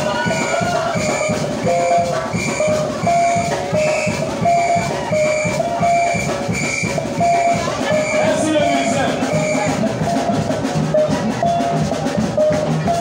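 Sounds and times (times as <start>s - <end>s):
drum-kit beat: 0.0s - 13.0s.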